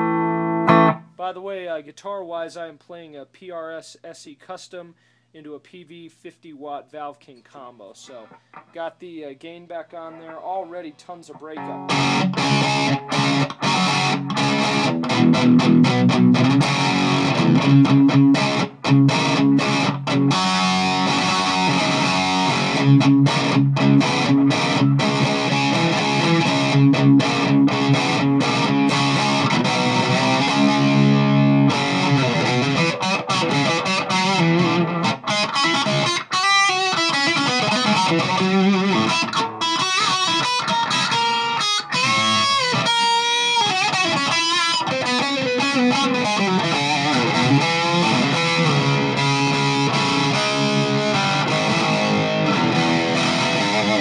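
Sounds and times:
distorted electric guitar: 0.0 - 1.2, 10.1 - 54.0.

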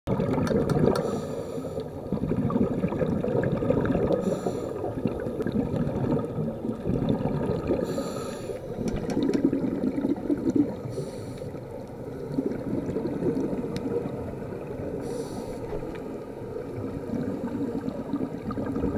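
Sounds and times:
regulator exhaling bubbles: 0.1 - 15.9, 16.7 - 18.9
muffled underwater noise: 3.6 - 18.9.

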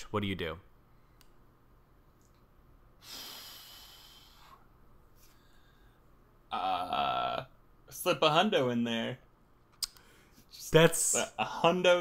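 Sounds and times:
person exhaling close to microphone: 3.0 - 4.6.

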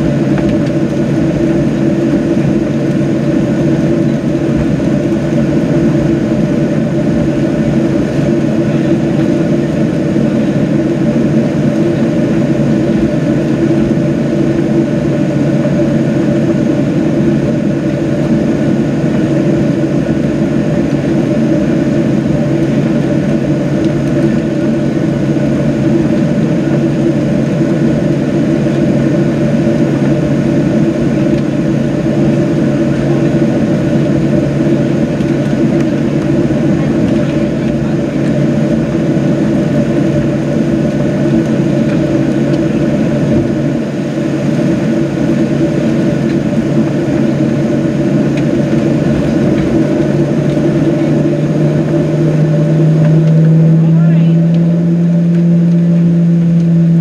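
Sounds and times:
airplane cabin hum: 0.0 - 57.0.

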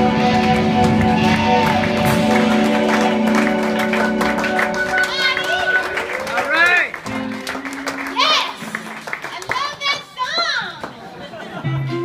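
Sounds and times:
live music: 0.0 - 12.0
crowd cheering and whooping: 0.3 - 6.9
scattered claps: 0.4 - 11.1.

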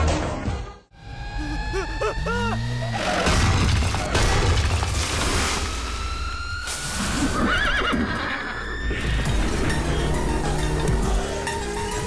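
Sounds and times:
horse whinnying: 7.4 - 8.6.

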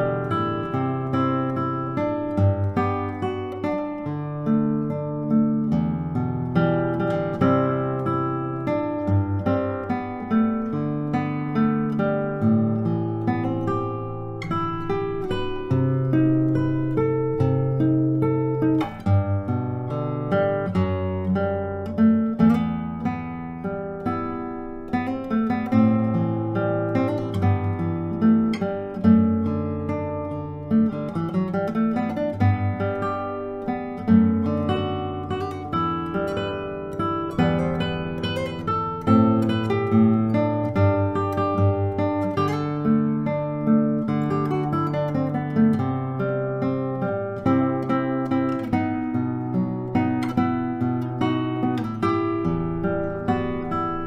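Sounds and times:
classical guitar fingerstyle: 0.0 - 54.0.

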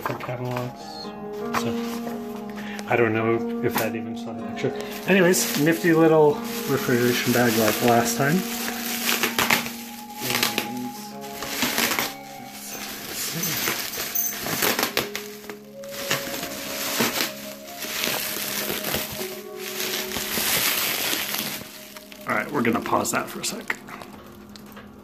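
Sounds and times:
foil bag crinkling: 4.6 - 25.0.

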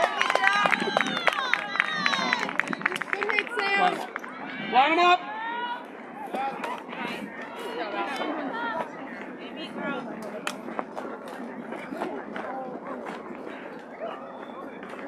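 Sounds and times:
chatter of many voices: 0.0 - 15.0.

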